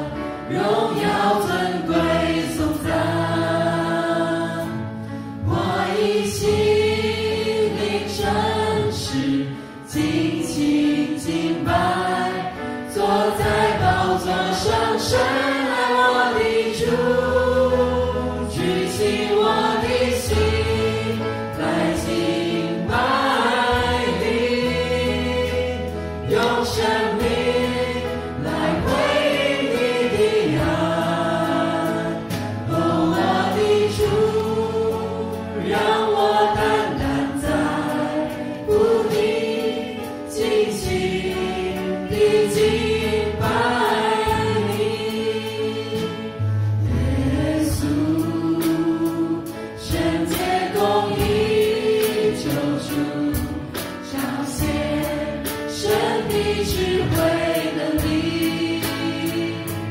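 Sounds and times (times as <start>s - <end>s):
keyboard: 0.0s - 59.9s
singers singing together: 0.0s - 59.9s
drums with steady beat: 10.0s - 59.9s
bass guitar: 40.8s - 59.9s.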